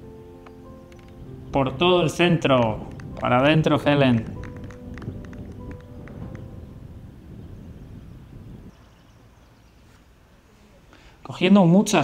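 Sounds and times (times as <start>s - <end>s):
low outdoor rumble: 1.3s - 9.6s.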